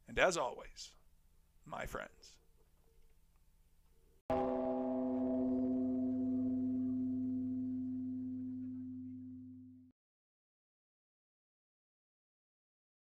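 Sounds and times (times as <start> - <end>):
struck bell-like tone: 4.3 - 9.9.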